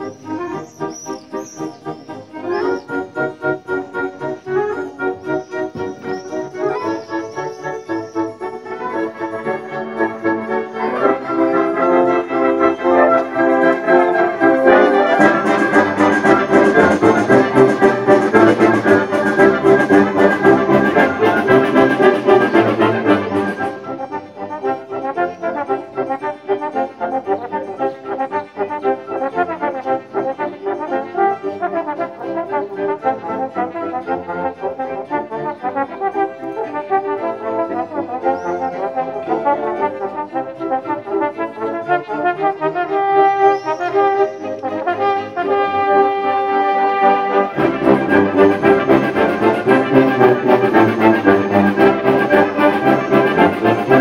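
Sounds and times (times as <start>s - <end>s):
wind band playing: 0.0s - 54.0s.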